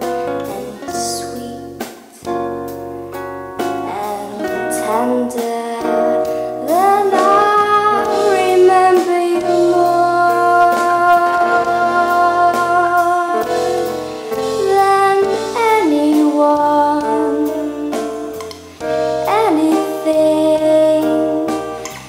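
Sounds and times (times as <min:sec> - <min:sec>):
woman singing slow song: 0:00.0 - 0:02.4, 0:03.8 - 0:18.5, 0:19.2 - 0:21.9
instrumental accompaniment: 0:00.0 - 0:22.0.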